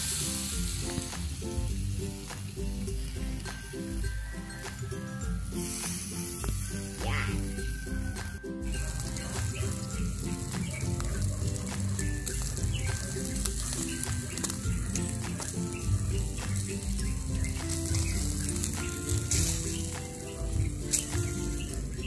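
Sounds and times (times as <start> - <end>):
background music: 0.0 - 22.0
meat sizzling on a grill: 0.0 - 22.0
small crackles: 7.4 - 22.0.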